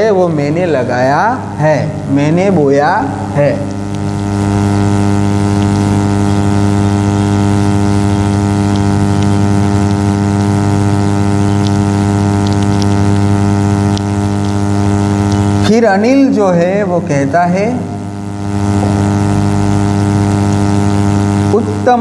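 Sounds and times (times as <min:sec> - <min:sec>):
electrical mains buzz: 0:00.0 - 0:22.0.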